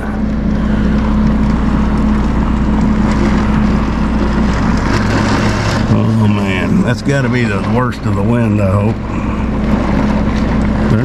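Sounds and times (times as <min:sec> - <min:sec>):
heavy rain: 0:00.0 - 0:11.0
low hum: 0:00.0 - 0:11.0
wind: 0:00.0 - 0:11.0.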